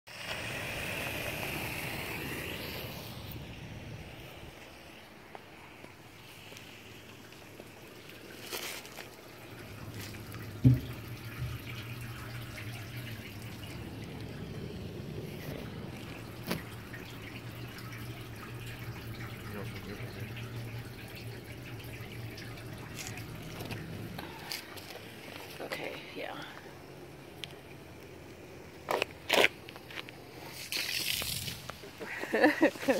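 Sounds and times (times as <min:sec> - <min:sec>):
low steady hum: 0:00.2 - 0:30.5
water trickling and dripping: 0:00.2 - 0:32.9.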